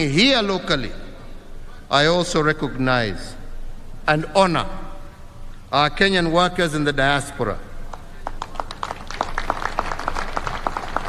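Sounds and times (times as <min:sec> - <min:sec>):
audience applause: 0:07.9 - 0:11.0.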